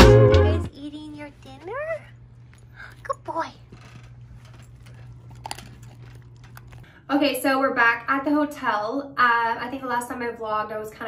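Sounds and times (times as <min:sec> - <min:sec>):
dogs crunching kibble: 0:01.3 - 0:06.9.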